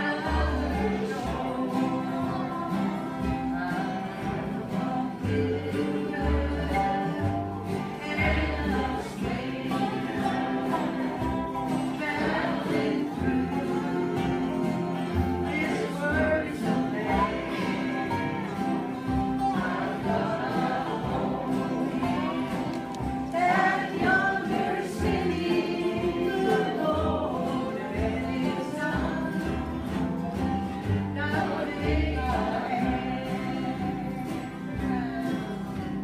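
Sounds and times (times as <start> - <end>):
acoustic guitars and basses: 0.0 - 36.0
group singing bluegrass: 0.0 - 36.0.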